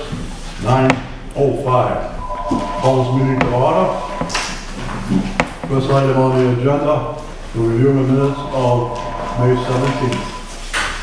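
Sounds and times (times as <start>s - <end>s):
man speaking: 0.6s - 4.2s, 5.2s - 10.4s.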